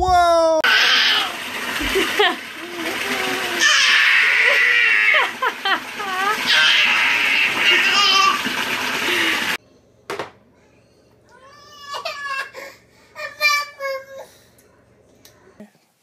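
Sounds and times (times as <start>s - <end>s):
baby laughing with squeals: 6.1s - 8.4s.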